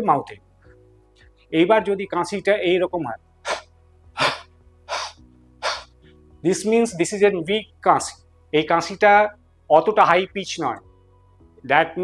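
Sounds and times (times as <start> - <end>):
man coughing weakly: 4.2 - 5.8.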